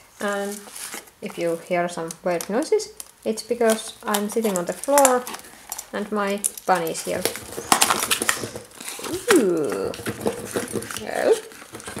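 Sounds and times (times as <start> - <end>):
cardboard and tubes crinkling: 0.0 - 12.0.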